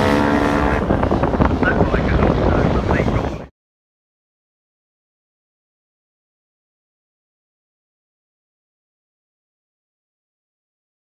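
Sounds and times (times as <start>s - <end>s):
wind buffeting microphone: 0.0s - 3.5s.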